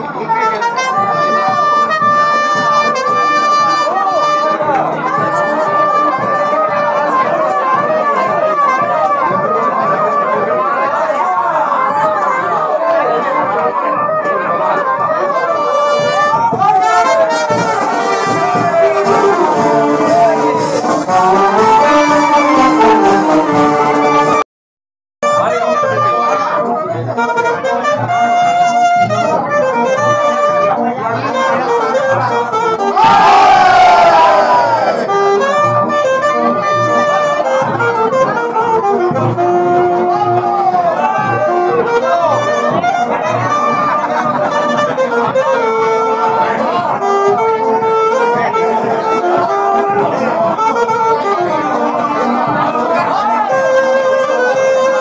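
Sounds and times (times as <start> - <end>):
wind band playing a tune: 0.0 - 24.5, 25.2 - 55.0
loud falling run of notes: 16.8 - 24.4.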